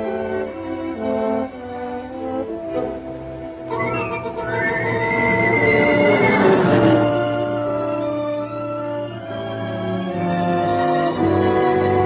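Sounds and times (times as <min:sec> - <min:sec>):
orchestral bowed strings: 0:00.0 - 0:12.0.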